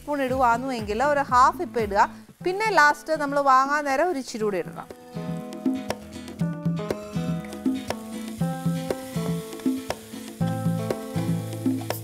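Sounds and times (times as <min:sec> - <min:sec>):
food sizzling in a pan: 0:00.0 - 0:12.0
instrumental music: 0:04.5 - 0:12.0.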